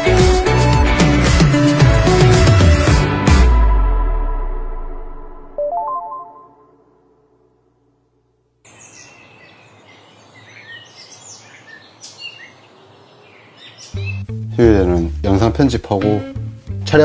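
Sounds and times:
bell-like musical run: 5.6s - 6.9s
birds chirping: 8.6s - 15.2s.

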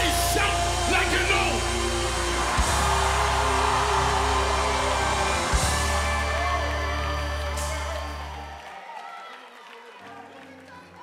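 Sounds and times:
steady bass notes: 0.0s - 8.5s
gospel band holding a chord: 0.0s - 8.7s.

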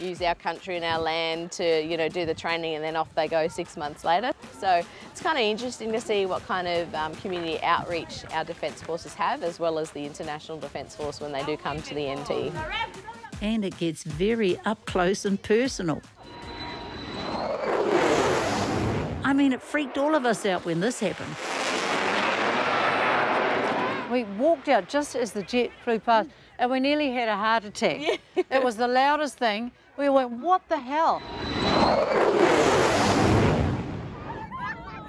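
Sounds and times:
fighter jet noise: 16.2s - 25.2s, 31.1s - 34.6s
faint high jet whine: 31.1s - 33.9s.

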